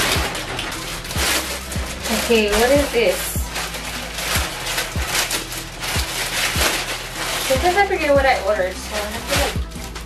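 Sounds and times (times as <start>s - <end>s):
background music with low beat: 0.0s - 10.0s
plastic packaging crinkling: 0.0s - 10.0s.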